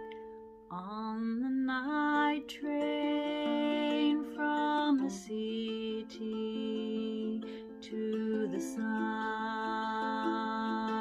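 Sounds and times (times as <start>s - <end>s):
ukulele: 0.0s - 11.0s
woman singing folk song: 0.0s - 11.0s.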